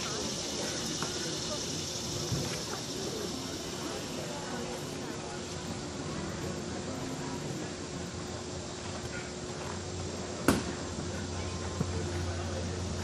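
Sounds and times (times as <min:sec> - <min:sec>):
faint indistinct voices: 0:00.0 - 0:13.0
steady background hum: 0:00.0 - 0:13.0.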